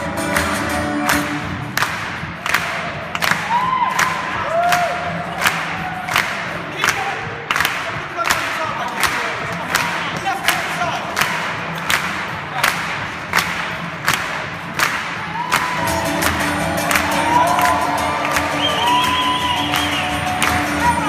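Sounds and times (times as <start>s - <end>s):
band music: 0.0s - 2.0s, 14.7s - 21.0s
people clapping in time: 0.0s - 21.0s
cheering and whoops: 3.2s - 6.3s, 15.2s - 21.0s.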